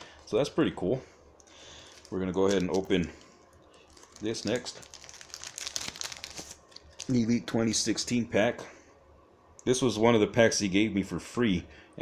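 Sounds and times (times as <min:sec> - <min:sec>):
card pack wrapper crinkling: 0:01.4 - 0:07.3.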